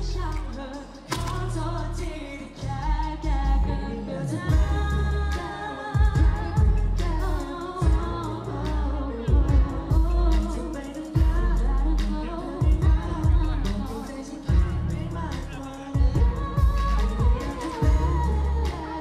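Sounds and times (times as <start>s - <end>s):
pop backing track with bass and drums: 0.0s - 19.0s
vocalists singing: 0.0s - 19.0s.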